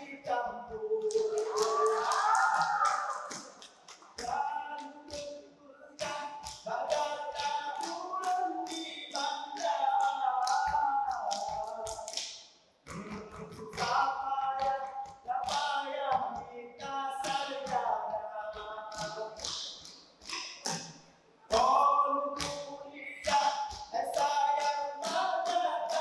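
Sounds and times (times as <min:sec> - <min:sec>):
men singing in unison: 0:00.0 - 0:02.6, 0:04.2 - 0:12.1, 0:12.9 - 0:19.5, 0:21.5 - 0:26.0
hand claps and body slaps: 0:01.0 - 0:05.3, 0:06.0 - 0:16.4, 0:17.2 - 0:17.9, 0:18.5 - 0:21.8, 0:22.4 - 0:26.0.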